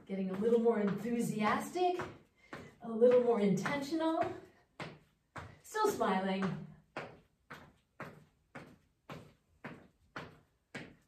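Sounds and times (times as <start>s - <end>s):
footsteps on rubber floor: 0.0s - 11.0s.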